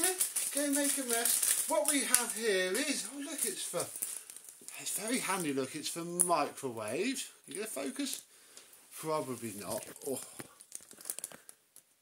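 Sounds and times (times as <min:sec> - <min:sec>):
plastic bag crinkling: 0:00.0 - 0:06.2, 0:09.3 - 0:11.9.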